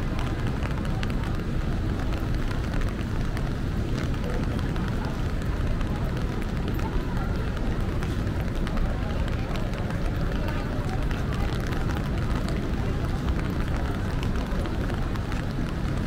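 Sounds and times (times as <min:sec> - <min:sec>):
traffic rumble: 0:00.0 - 0:16.0
raindrop ticks: 0:00.1 - 0:16.0.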